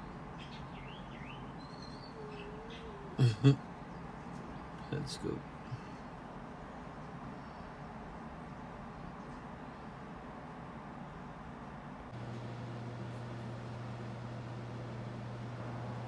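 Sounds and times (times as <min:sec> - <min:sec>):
low background hiss: 0:00.0 - 0:16.0
steady low hum: 0:02.1 - 0:16.0.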